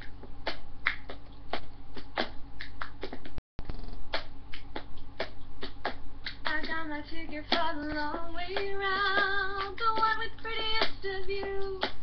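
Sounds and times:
hand claps and slaps: 0:00.0 - 0:03.4, 0:04.1 - 0:12.0.

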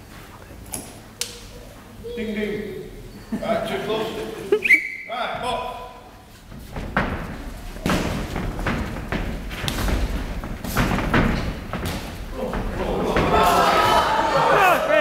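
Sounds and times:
voices around ring: 0:12.3 - 0:15.0.

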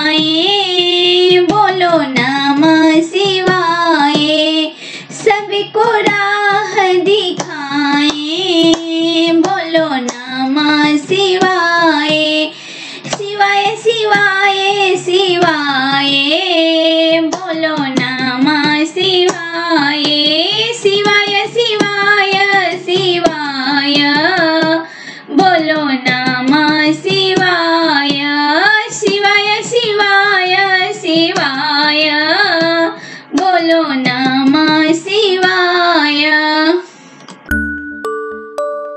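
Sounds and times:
light percussive taps: 0:00.0 - 0:35.6
high voice singing folk song: 0:00.0 - 0:36.9.

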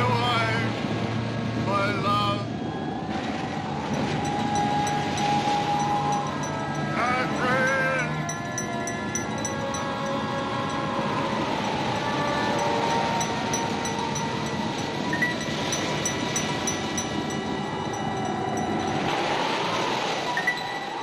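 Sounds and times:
steady rushing noise: 0:00.0 - 0:21.0
wailing eerie tone: 0:02.5 - 0:21.0.

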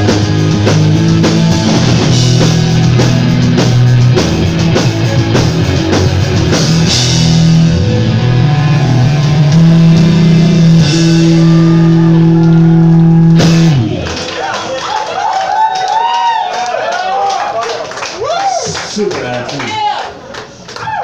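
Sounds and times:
punk rock band playing live: 0:00.0 - 0:14.2
crowd cheering and clapping: 0:05.6 - 0:21.0.

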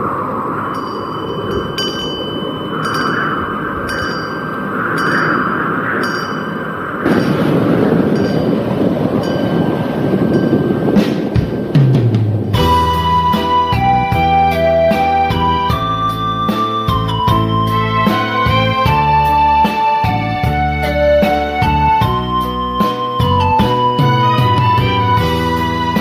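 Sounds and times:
light ringing chimes: 0:00.0 - 0:11.8
steady rushing noise: 0:00.0 - 0:26.0.

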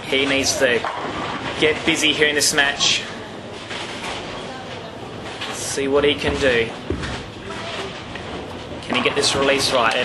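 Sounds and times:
bowling balls rolling on lanes: 0:00.0 - 0:10.0.

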